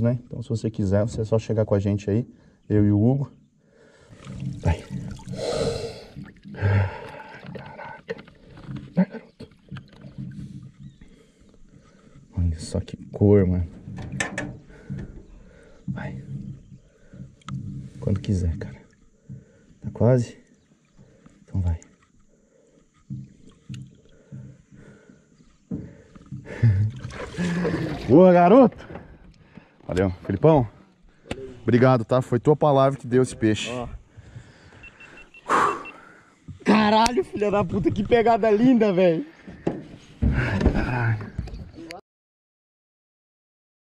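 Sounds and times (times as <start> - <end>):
water splashing and dripping: 4.0 - 10.8, 26.1 - 28.5
fish splashing in water: 26.9 - 28.1.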